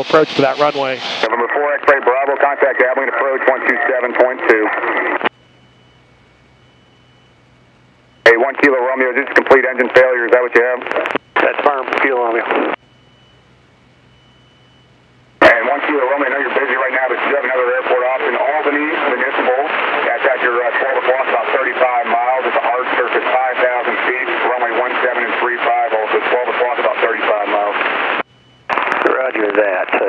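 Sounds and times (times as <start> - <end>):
garbled radio voices: 0.0 - 5.3, 8.2 - 12.8, 15.4 - 30.0
faint steady tone and hum: 0.0 - 30.0
radio click: 28.7 - 30.0.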